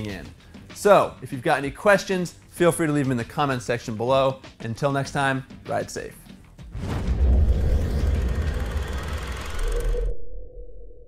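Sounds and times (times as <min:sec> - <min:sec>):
deep rumbling whoosh: 0:06.7 - 0:11.0.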